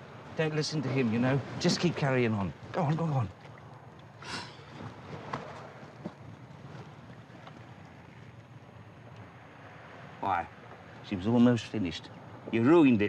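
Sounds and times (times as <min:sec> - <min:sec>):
sea noise: 0:00.0 - 0:13.0
wind: 0:00.0 - 0:13.0.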